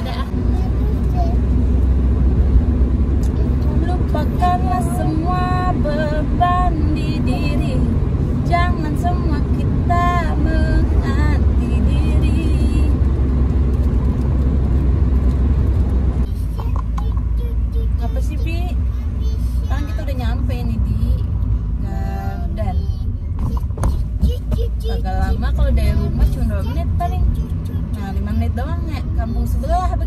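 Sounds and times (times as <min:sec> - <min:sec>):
car cabin rumble: 0:00.0 - 0:30.0
woman speaking: 0:19.7 - 0:21.2, 0:25.0 - 0:27.3, 0:27.9 - 0:30.0.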